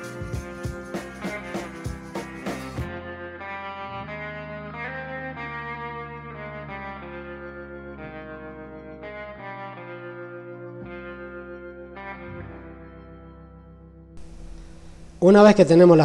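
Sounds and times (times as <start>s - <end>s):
held instrumental notes: 0.0s - 15.5s
drum beat: 0.1s - 2.9s.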